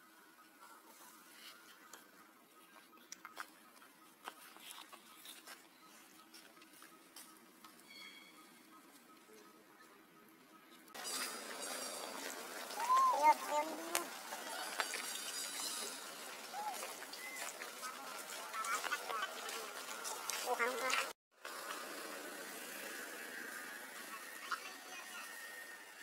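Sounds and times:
steady outdoor hiss: 0.0 - 26.0
monkeys handling clicks and rustles: 11.0 - 21.1.

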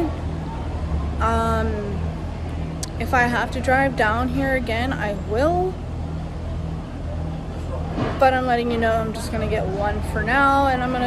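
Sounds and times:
faint background noise: 0.0 - 11.0
machinery humming: 0.0 - 11.0.

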